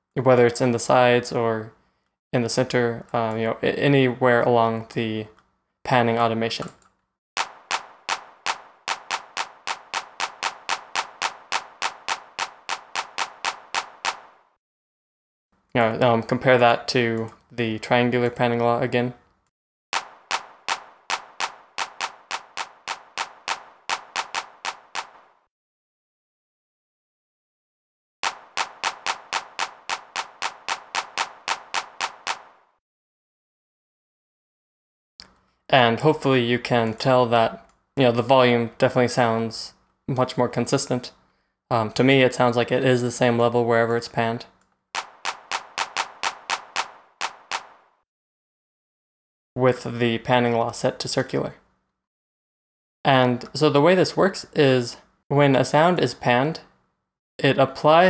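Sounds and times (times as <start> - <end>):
drum machine hand-clap: 7.4 - 14.4, 20.0 - 25.3, 28.2 - 32.6, 45.0 - 47.9
hand clap drum sample: 45.0 - 47.6.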